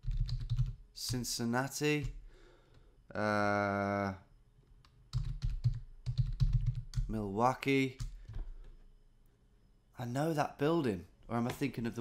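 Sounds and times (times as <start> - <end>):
typing on computer keyboard: 0.0 - 1.2, 4.8 - 7.1.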